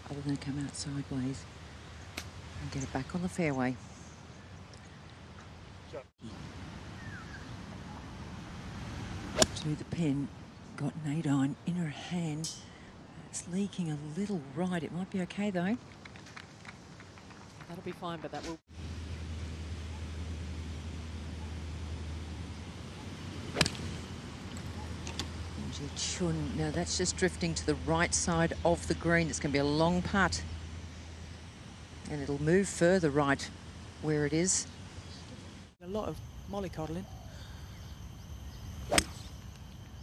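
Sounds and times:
outdoor background hiss: 0.0s - 40.0s
golf club striking ball: 9.4s - 9.6s, 23.5s - 23.9s, 38.9s - 39.3s.

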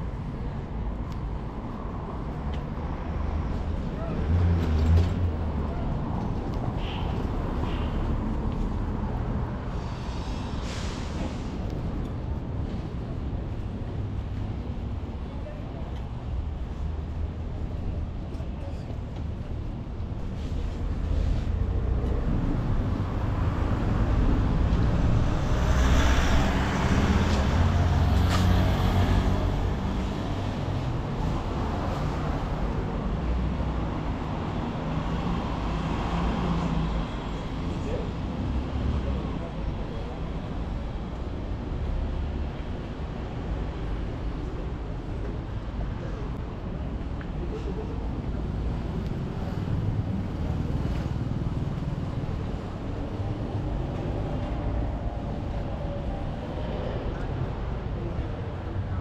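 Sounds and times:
street traffic rumble: 0.0s - 59.0s.

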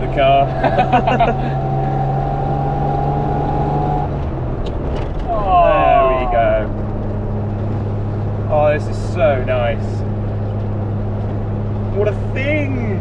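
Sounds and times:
car engine running: 0.0s - 13.0s.

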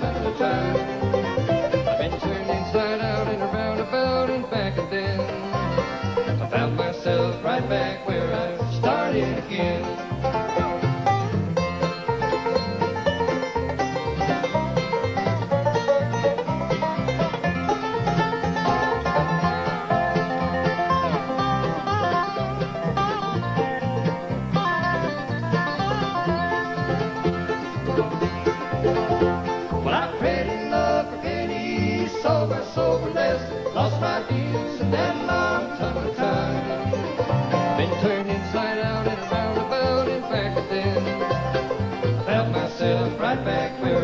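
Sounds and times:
banjo: 0.0s - 44.0s
bluegrass band playing: 0.0s - 44.0s
person singing: 1.9s - 5.4s, 6.4s - 10.0s, 29.8s - 37.1s, 37.8s - 41.4s, 42.2s - 44.0s.

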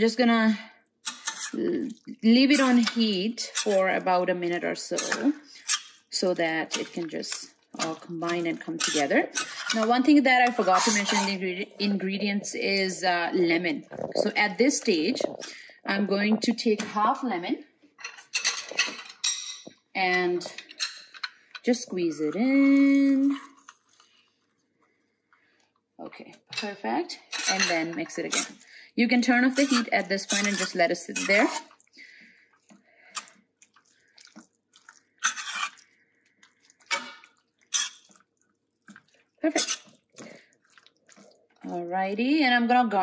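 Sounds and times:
utensils and dishes clattering: 1.1s - 1.7s, 4.8s - 11.4s, 18.0s - 19.7s, 20.4s - 23.9s, 27.3s - 28.6s, 29.2s - 31.8s, 35.2s - 35.8s, 36.8s - 38.2s, 38.9s - 40.0s
metal spoon stirring thick curry: 1.1s - 11.7s, 23.3s - 24.6s, 27.4s - 42.4s.

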